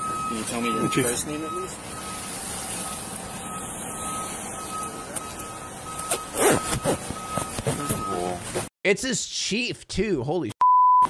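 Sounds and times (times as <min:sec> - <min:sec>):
electronic warning beeps: 0:00.0 - 0:08.4.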